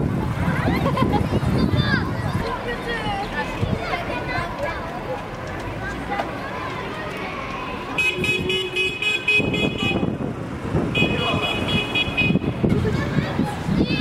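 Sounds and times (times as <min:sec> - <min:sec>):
children's voices: 0:00.0 - 0:08.2, 0:12.4 - 0:14.0
vehicle horn: 0:08.0 - 0:10.2, 0:10.9 - 0:12.6.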